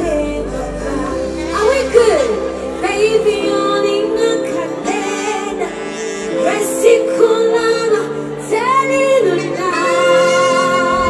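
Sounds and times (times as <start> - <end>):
woman singing into microphone: 0.0 - 11.0.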